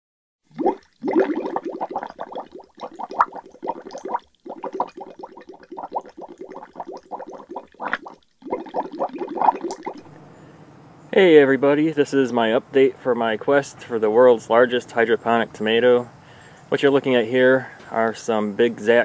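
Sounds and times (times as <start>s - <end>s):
water bubbling: 0.5s - 10.2s.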